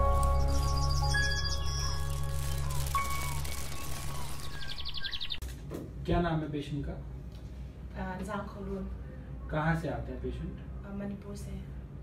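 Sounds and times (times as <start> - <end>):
bird chirps: 0.0 - 5.4.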